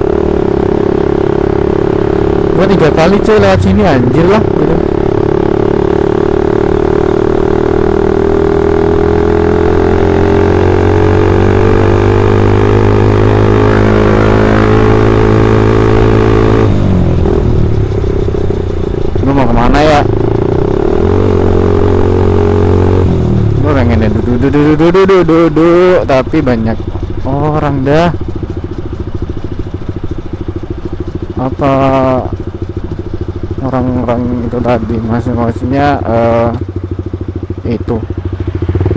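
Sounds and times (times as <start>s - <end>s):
single-cylinder motorcycle engine: 0.0s - 38.9s.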